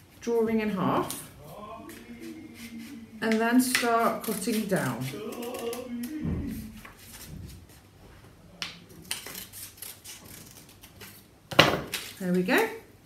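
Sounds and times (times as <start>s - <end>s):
scissors snipping paper: 3.3s - 6.1s, 9.0s - 11.2s.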